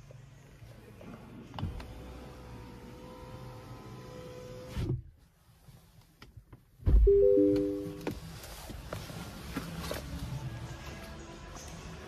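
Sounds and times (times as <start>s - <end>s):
electronic three-tone chime: 7.1s - 8.0s.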